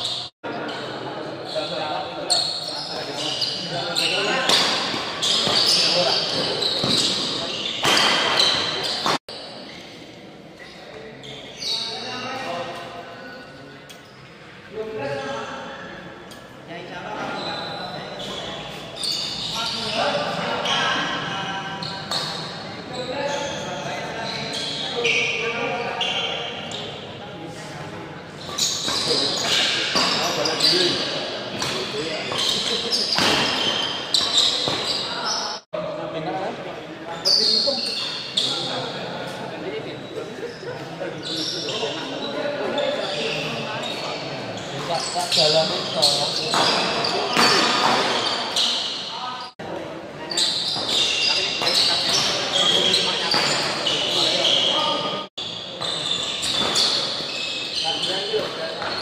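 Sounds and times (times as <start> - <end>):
echoing voices: 0.0 - 59.0.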